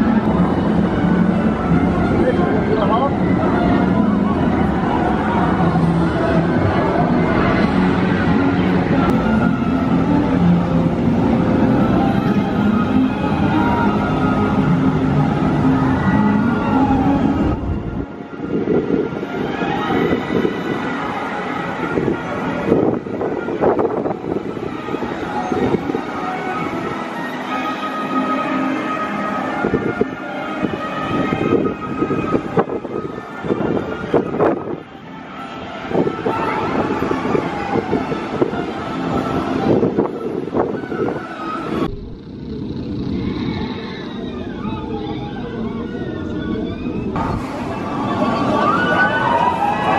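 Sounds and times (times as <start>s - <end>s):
roller coaster train rumbling: 0.0s - 49.9s.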